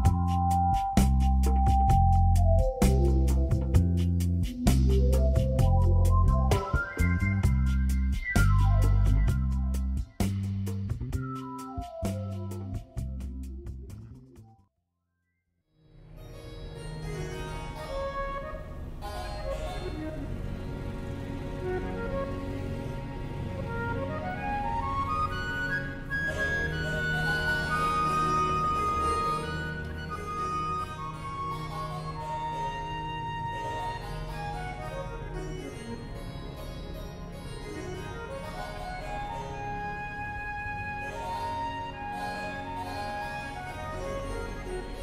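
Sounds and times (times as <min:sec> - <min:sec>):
harpsichord-like electronic notes: 0:00.0 - 0:09.6, 0:25.1 - 0:39.4
instrumental background music: 0:00.0 - 0:14.6, 0:16.0 - 0:45.0.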